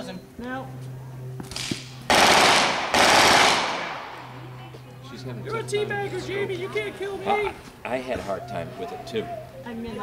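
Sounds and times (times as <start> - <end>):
rifle shots echoing: 1.5 - 4.4.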